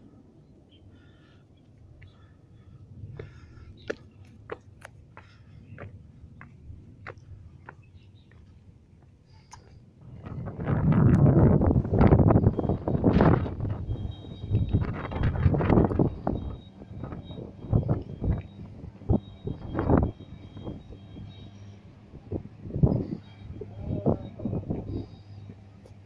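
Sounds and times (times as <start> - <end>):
wind buffeting microphone: 10.0 - 26.0.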